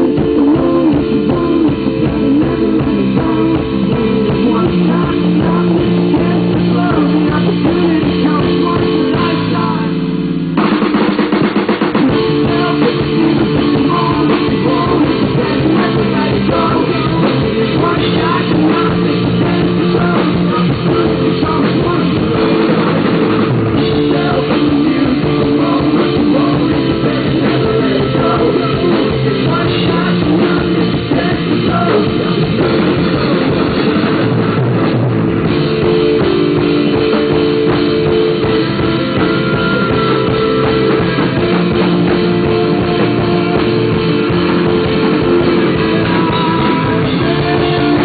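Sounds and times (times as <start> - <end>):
bass guitar: 0.0 - 48.0
drum kit: 0.0 - 48.0
electric guitar: 0.0 - 48.0.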